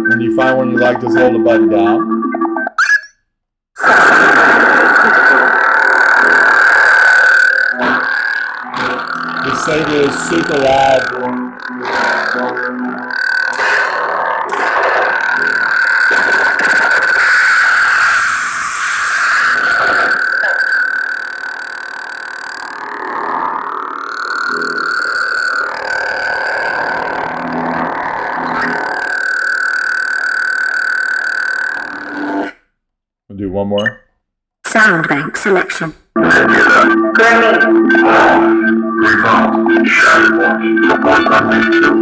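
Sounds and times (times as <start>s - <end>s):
lightsaber blade hum: 3.8s - 32.6s.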